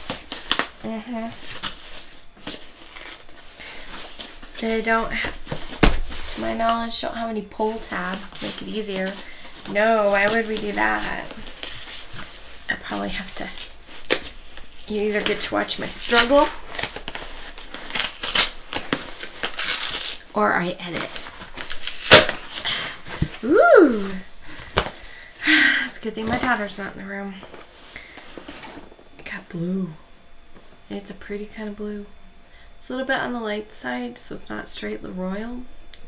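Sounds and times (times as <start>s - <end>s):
tearing tape and cardboard: 1.3s - 3.3s, 16.0s - 20.2s, 20.9s - 22.7s.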